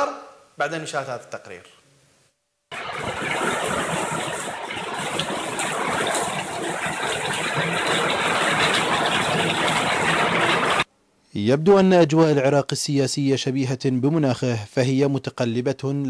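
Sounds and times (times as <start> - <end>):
heavily falling water spray: 2.7 - 10.9.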